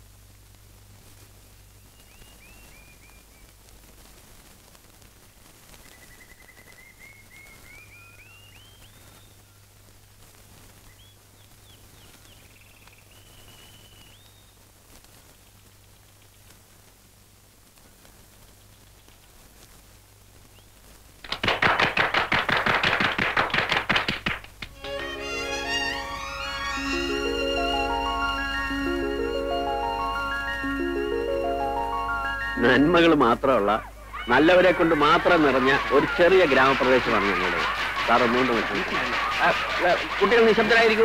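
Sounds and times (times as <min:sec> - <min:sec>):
low film soundtrack hum: 0:22.4 - 0:41.0
film music: 0:24.7 - 0:33.6
whistled notes sliding: 0:24.8 - 0:32.6
fast drum roll: 0:34.4 - 0:41.0.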